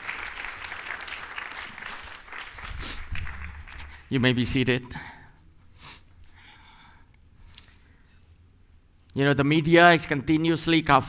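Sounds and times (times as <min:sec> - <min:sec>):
congregation applauding: 0:00.0 - 0:04.2.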